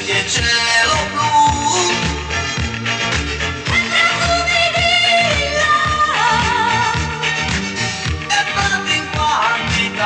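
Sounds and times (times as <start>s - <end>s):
person singing with vibrato: 0.0s - 2.6s, 3.6s - 7.5s, 8.1s - 10.0s
upbeat pop song: 0.0s - 10.0s.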